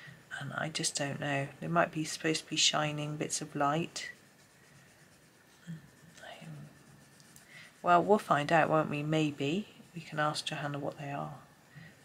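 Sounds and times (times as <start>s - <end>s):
pencil scratching on paper: 1.7s - 12.0s.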